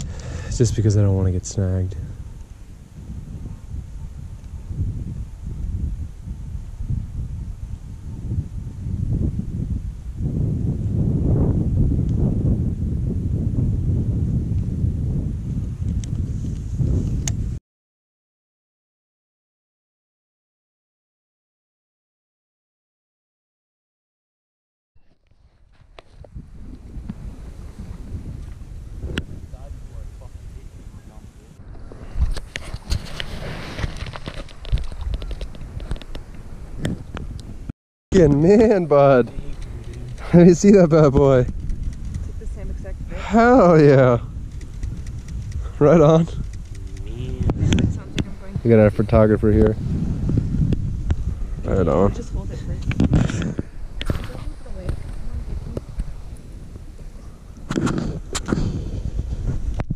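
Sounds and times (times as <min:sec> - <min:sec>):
wind buffeting microphone: 0:00.0 - 0:17.6, 0:25.0 - 0:59.9
faint clicks: 0:39.3 - 0:40.3, 0:41.5 - 0:42.3.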